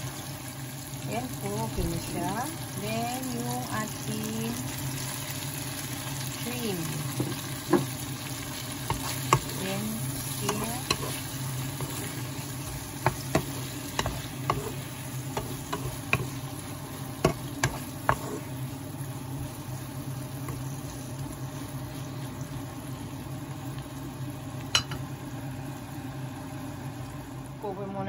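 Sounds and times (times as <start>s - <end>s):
faint sizzle: 0.0s - 28.0s
steady low hum: 0.0s - 28.0s
wooden spatula stirring in pan: 5.0s - 23.2s
spatula tapping against pan: 13.0s - 14.7s.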